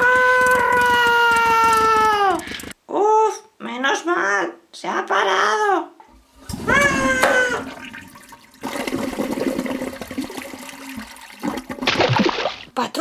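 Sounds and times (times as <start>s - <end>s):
high-pitched cry: 0.0s - 2.5s, 6.6s - 7.8s
toilet flushing: 6.2s - 12.7s.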